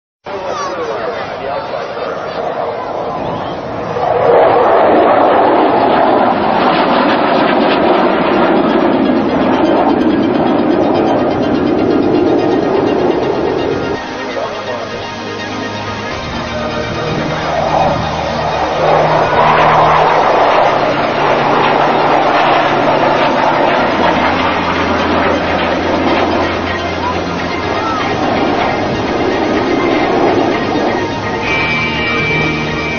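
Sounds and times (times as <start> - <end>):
jet engine roar: 0.3 - 32.9.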